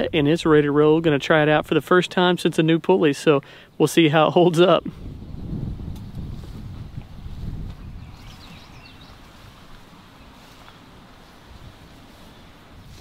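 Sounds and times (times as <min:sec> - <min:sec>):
wind buffeting microphone: 0:00.0 - 0:02.0, 0:04.8 - 0:13.0.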